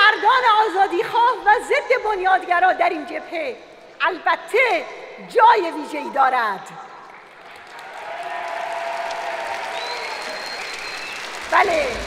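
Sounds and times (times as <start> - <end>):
audience applauding: 7.0 - 12.0.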